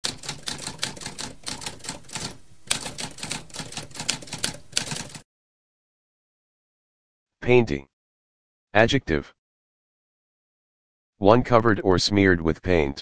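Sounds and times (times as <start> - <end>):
typewriter keys clicking: 0.0 - 5.2.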